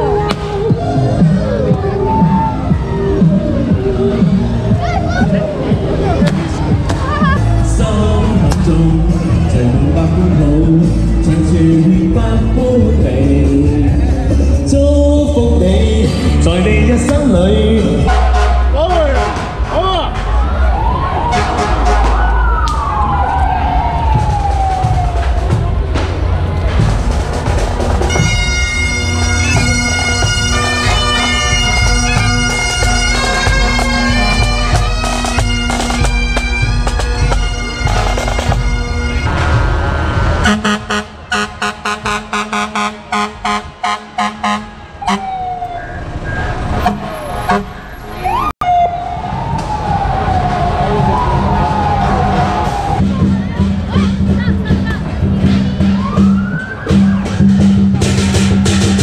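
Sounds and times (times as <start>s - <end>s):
siren winding down: 0.7s - 4.6s, 20.5s - 25.6s, 45.0s - 53.0s
fire engine horn blasts: 18.0s - 19.7s, 21.2s - 22.4s, 28.1s - 36.0s, 40.4s - 45.4s, 46.7s - 47.9s.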